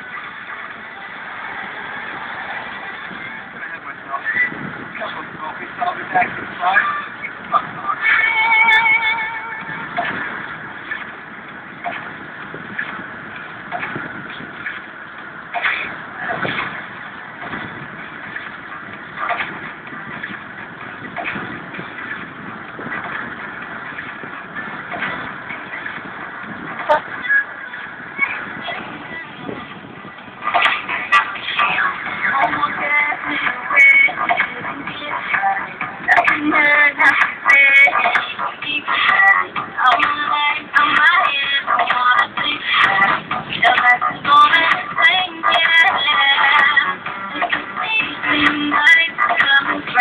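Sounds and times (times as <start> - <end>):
indistinct voices: 24.8 - 50.0.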